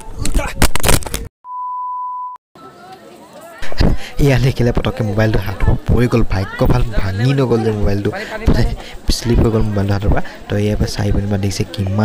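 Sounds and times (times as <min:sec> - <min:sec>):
electronic beep tone: 0:01.5 - 0:02.4.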